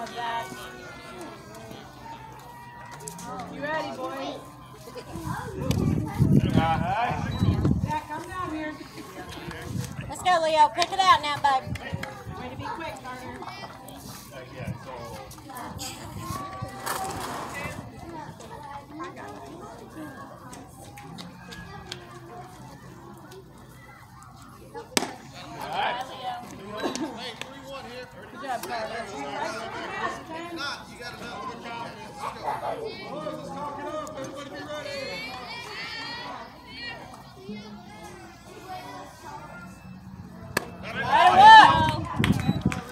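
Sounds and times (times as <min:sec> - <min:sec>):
chatter of children and adults: 0:00.0 - 0:42.9.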